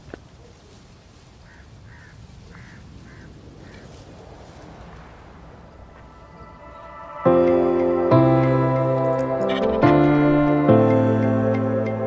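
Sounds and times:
bird calling: 1.4s - 5.1s
steady low rumble: 1.7s - 12.0s.

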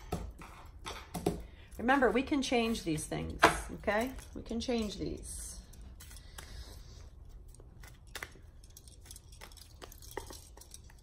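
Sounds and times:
cards shuffling and clicking: 5.9s - 11.0s.

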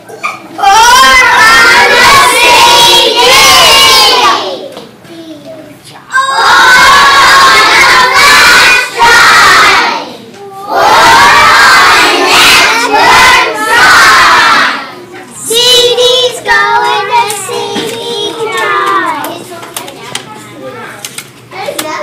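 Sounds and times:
children shouting and cheering: 0.0s - 4.8s, 6.1s - 19.5s
quiet children's voices: 0.0s - 8.6s, 13.5s - 22.0s.

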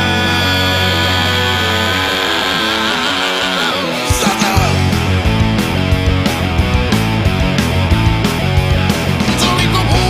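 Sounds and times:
bass guitar: 0.0s - 10.0s
distorted electric guitar: 0.0s - 10.0s.

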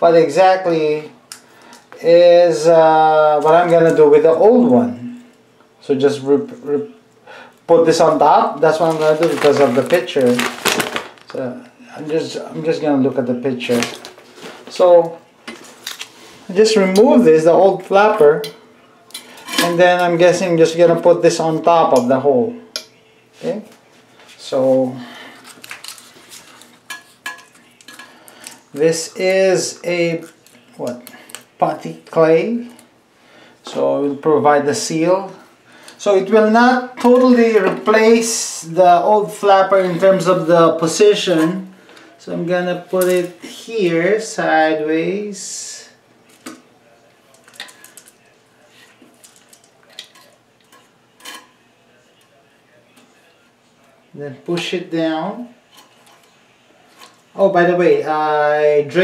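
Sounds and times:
rustling: 8.6s - 11.5s.

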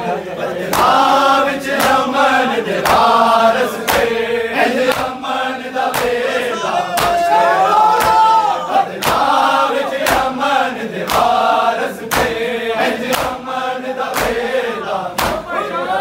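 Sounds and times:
men chanting in unison: 0.0s - 16.0s
chest-beating slaps: 0.7s - 1.0s, 1.7s - 2.1s, 2.8s - 3.2s, 3.8s - 4.1s, 4.8s - 5.2s, 5.8s - 6.3s, 7.0s - 7.2s, 7.9s - 8.3s, 9.0s - 9.4s, 10.0s - 10.4s, 11.0s - 12.4s, 13.0s - 14.5s, 15.1s - 15.5s.

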